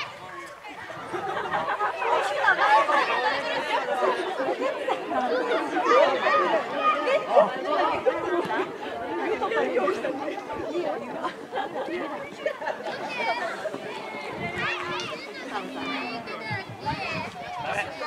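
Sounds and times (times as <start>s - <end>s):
overlapping chatter of voices: 0.0s - 18.0s.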